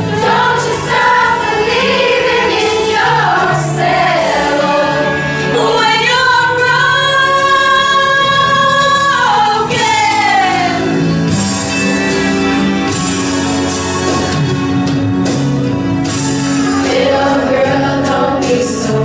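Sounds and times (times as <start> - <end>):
women's choir singing: 0.0 - 11.0, 16.6 - 19.0.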